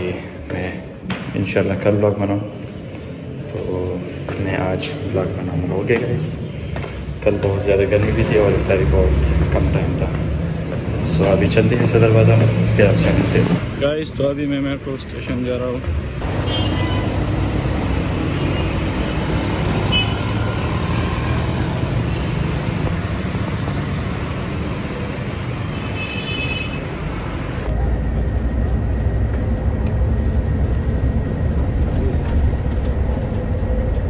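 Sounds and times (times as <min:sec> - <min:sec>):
road traffic noise: 0:00.0 - 0:34.0
bus rumble from inside: 0:27.0 - 0:34.0.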